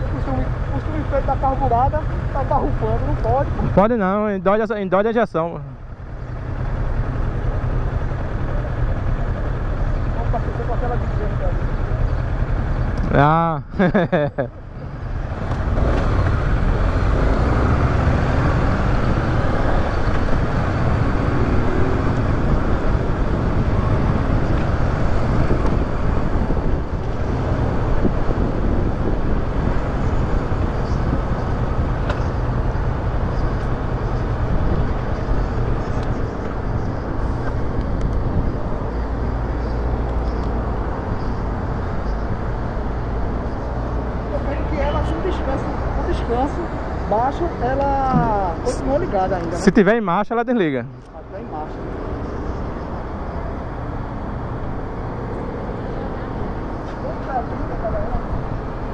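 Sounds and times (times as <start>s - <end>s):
wind and road noise: 0.0s - 58.9s
motorcycle engine running: 5.7s - 13.3s.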